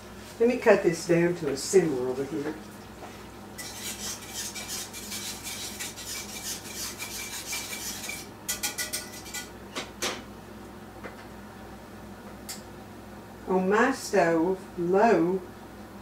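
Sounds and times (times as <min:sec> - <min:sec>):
utensil scraping and stirring a pot: 0:02.0 - 0:09.5.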